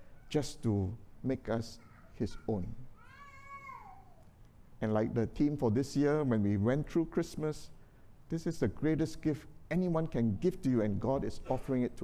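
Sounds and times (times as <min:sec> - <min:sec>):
faint high-pitched cry: 0:01.7 - 0:04.4.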